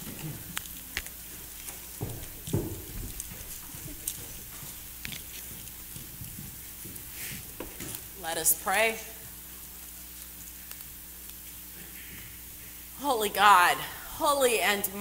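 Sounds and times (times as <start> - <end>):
footsteps: 0.0 - 12.8
rustling of people moving: 0.0 - 14.4
faint steady hiss: 0.0 - 15.0.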